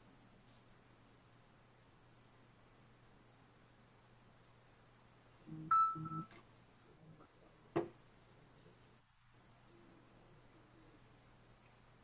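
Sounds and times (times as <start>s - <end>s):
low muffled sound: 0.0s - 12.0s
short electronic beep: 5.7s - 6.3s.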